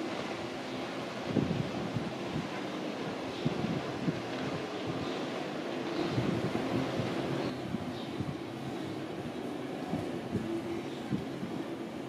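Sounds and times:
jet ski engines droning: 0.0s - 12.0s.

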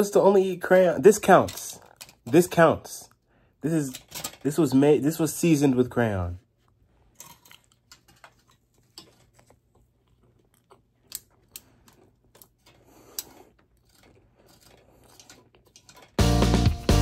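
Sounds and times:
person chewing food: 6.5s - 16.7s.

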